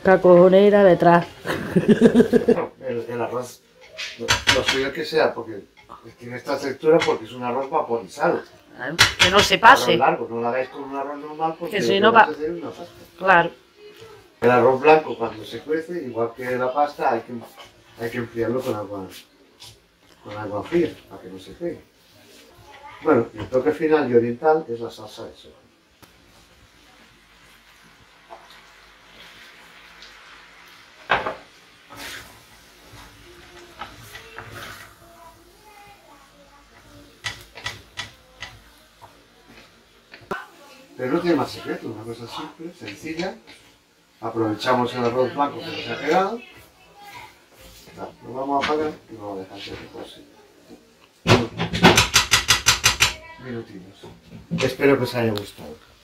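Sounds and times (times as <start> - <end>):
spatula knocking on frying pan: 4.3 - 4.9, 9.0 - 9.6, 37.2 - 38.6, 51.3 - 53.2
spoon clacking against pan: 9.0 - 9.6, 37.2 - 38.6
wooden spoon stirring rice: 26.1 - 45.3.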